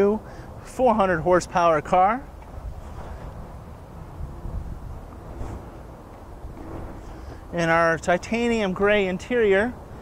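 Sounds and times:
wind buffeting microphone: 0.5s - 10.0s.

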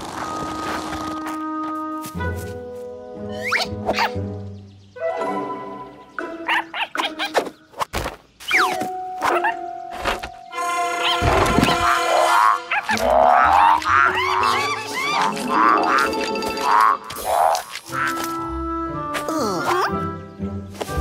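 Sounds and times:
cartoon music: 10.5s - 20.1s
squeaky cartoon animal calls: 11.0s - 16.1s.

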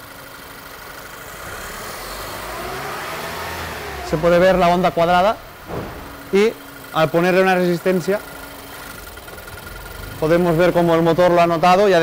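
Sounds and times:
car engine revving: 0.6s - 11.7s.

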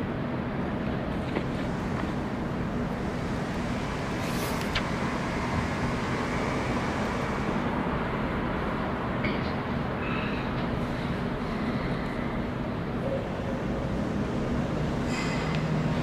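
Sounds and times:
steady rumbling: 1.2s - 9.1s.

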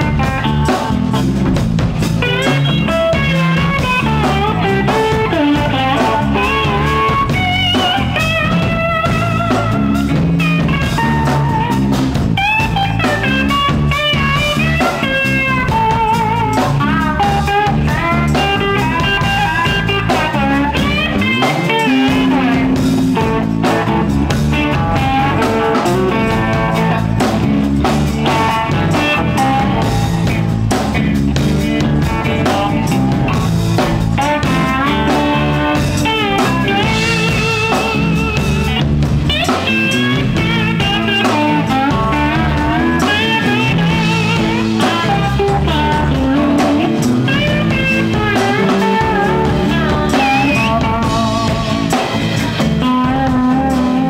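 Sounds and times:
blues harmonica lead line: 0.0s - 54.0s
blues-rock band playing: 0.0s - 54.0s.

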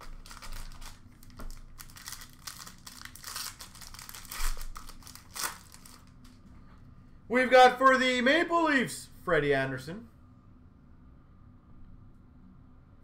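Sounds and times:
card pack wrappers crinkling: 0.0s - 6.3s.

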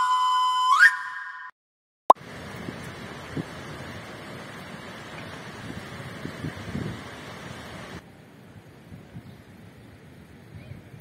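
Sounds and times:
whistle-like electronic tone: 0.0s - 1.6s.

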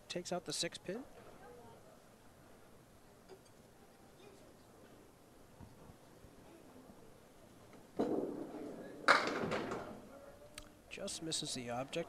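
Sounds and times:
ball hitting pins: 8.0s - 10.0s
bowling ball rolling on wooden lane: 8.0s - 10.0s.

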